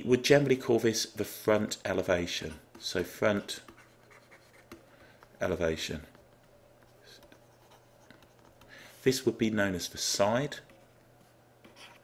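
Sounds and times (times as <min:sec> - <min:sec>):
stylus scratching on tablet: 0:02.6 - 0:04.8, 0:06.0 - 0:08.7, 0:10.6 - 0:12.0.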